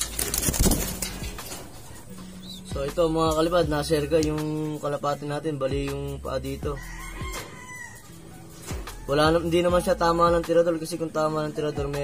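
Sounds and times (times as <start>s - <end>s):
bird scuffle: 0.0s - 2.8s
pigeons cooing: 0.0s - 4.0s, 6.9s - 9.9s.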